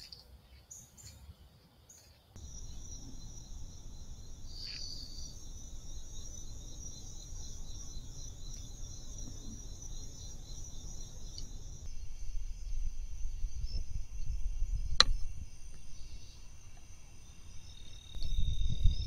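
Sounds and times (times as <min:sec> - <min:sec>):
low microphone rumble: 0:02.4 - 0:16.6
crickets chirring: 0:02.4 - 0:19.0.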